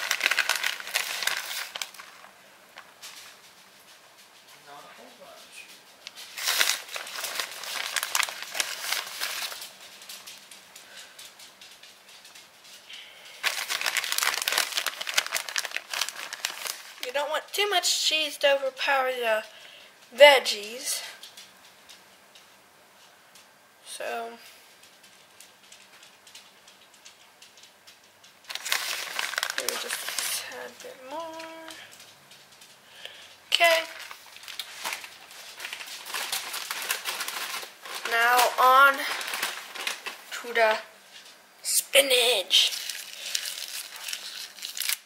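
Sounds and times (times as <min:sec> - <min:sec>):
plastic bag crinkling: 0:00.0 - 0:03.9, 0:06.0 - 0:12.4, 0:13.2 - 0:17.7, 0:28.4 - 0:41.2, 0:42.0 - 0:45.0
cheese rustling on metal pan: 0:00.0 - 0:17.6, 0:28.4 - 0:41.4, 0:42.5 - 0:45.0.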